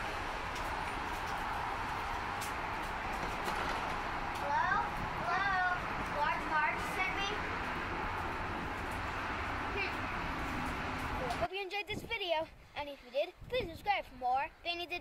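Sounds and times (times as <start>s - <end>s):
rain: 0.0s - 11.5s
wind: 0.0s - 15.0s.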